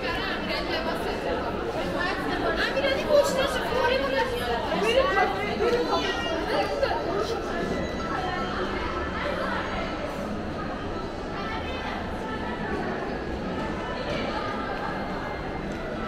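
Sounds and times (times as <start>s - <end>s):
people chatting: 0.0s - 16.0s.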